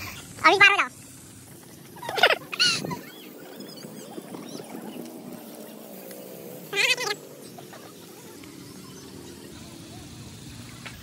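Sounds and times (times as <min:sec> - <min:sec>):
animal call with wavering pitch: 0:02.0 - 0:04.9, 0:06.7 - 0:10.2.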